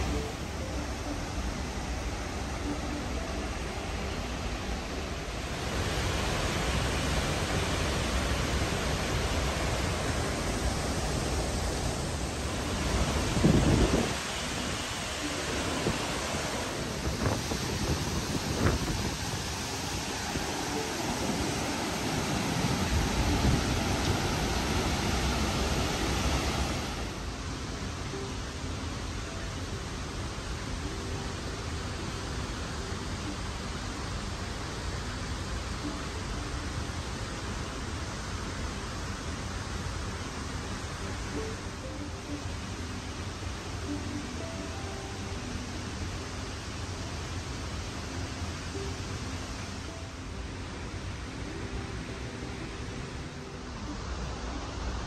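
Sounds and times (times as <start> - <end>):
waterfall roaring: 0.0 - 55.0.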